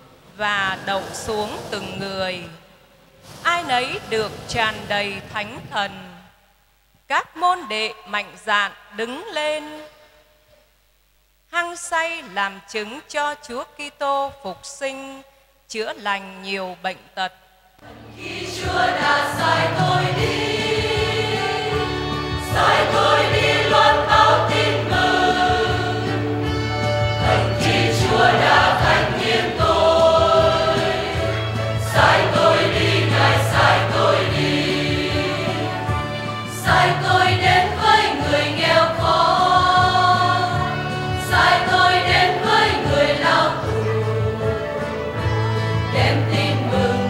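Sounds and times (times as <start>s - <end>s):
choir singing a hymn: 0.4s - 2.4s, 17.8s - 47.0s
instrumental accompaniment with bass: 17.9s - 47.0s.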